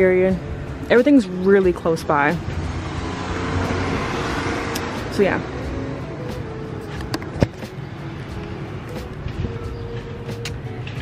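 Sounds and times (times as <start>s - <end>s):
distant street traffic hum: 0.0s - 11.0s.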